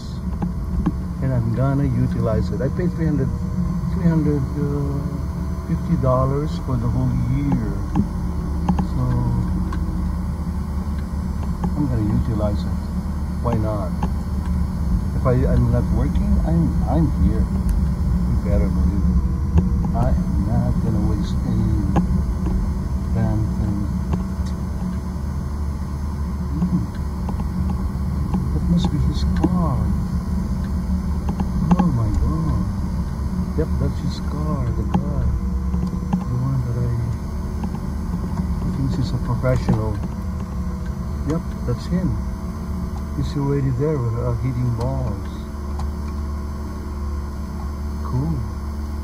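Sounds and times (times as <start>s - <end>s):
car engine and road rumble: 0.0s - 49.0s.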